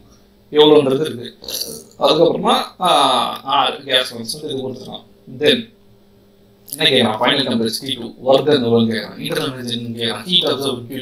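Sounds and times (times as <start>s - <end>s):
man speaking: 0.5s - 5.7s, 6.7s - 11.0s.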